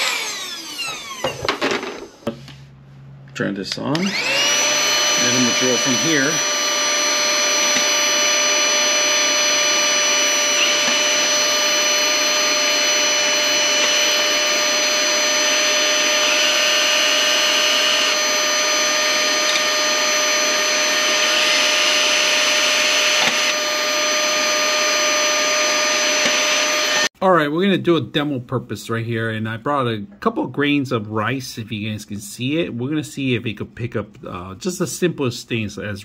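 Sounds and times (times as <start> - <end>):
cordless drill boring into metal: 0.0 - 1.7, 4.0 - 27.1
mini vacuum whining: 0.0 - 2.3, 3.9 - 27.1.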